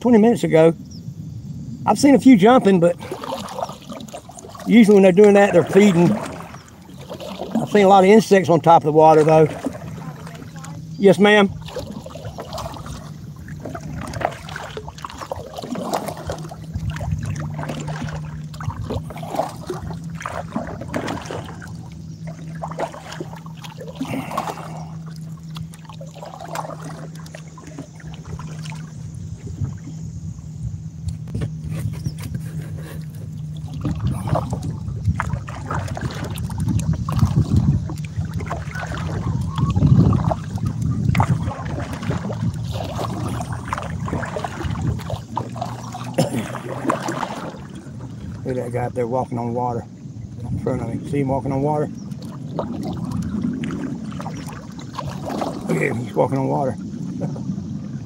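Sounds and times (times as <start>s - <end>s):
wind gusting on microphone: 0.0s - 23.4s, 26.0s - 58.0s
small waves lapping against hull: 0.0s - 58.0s
steady low hum: 0.0s - 58.0s.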